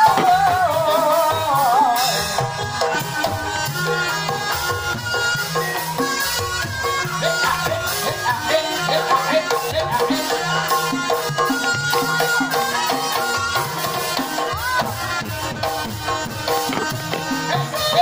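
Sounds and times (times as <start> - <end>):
hand drum strokes: 15.3 - 17.9.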